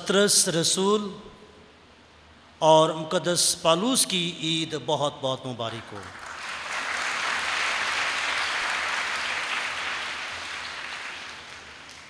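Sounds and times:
congregation applauding: 0:06.0 - 0:12.0.

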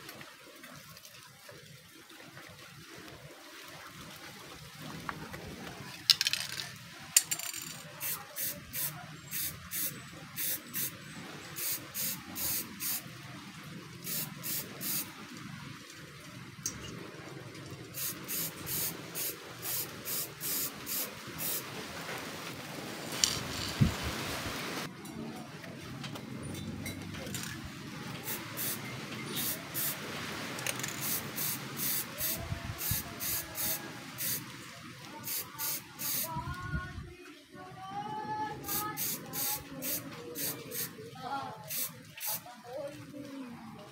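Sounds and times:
aerosol can spraying: 0:08.0 - 0:11.0, 0:11.6 - 0:13.0, 0:14.0 - 0:15.1, 0:18.0 - 0:21.6, 0:28.2 - 0:28.8, 0:29.4 - 0:30.0, 0:30.9 - 0:34.4, 0:35.2 - 0:36.3, 0:38.7 - 0:40.9, 0:41.7 - 0:42.4.

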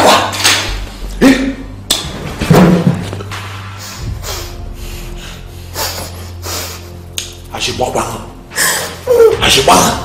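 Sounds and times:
man breathing hard: 0:03.8 - 0:07.1.

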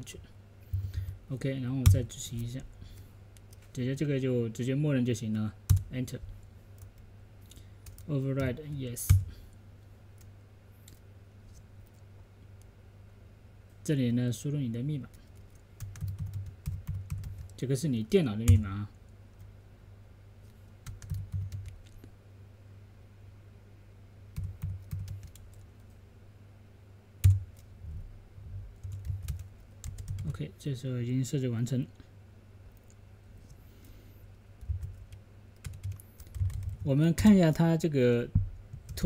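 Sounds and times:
low steady hum: 0:00.0 - 0:39.0
computer keyboard keystrokes: 0:05.7 - 0:05.9, 0:07.8 - 0:09.3, 0:15.2 - 0:17.6, 0:18.4 - 0:18.6, 0:20.8 - 0:22.0, 0:24.4 - 0:26.0, 0:27.2 - 0:27.7, 0:28.8 - 0:30.3, 0:34.6 - 0:36.8
loud keyboard keystroke: 0:34.6 - 0:36.8.

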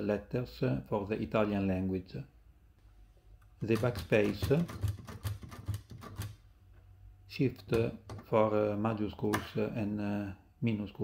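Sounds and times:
typewriter key clacks: 0:03.6 - 0:06.4.

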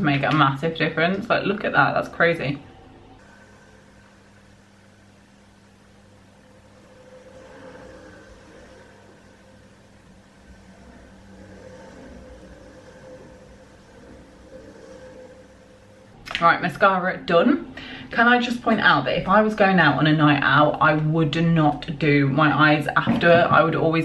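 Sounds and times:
mechanical hum: 0:00.0 - 0:24.0.

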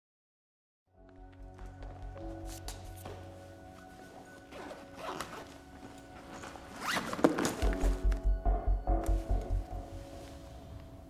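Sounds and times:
droning music: 0:01.0 - 0:11.0
low pulsing beat: 0:07.6 - 0:10.2.

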